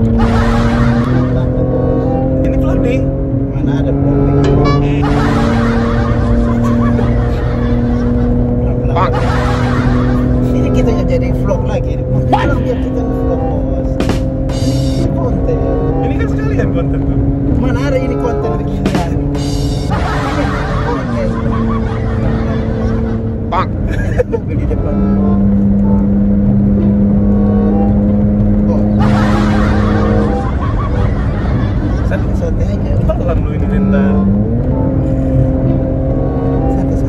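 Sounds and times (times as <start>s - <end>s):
car drone inside cabin: 0.0s - 37.0s.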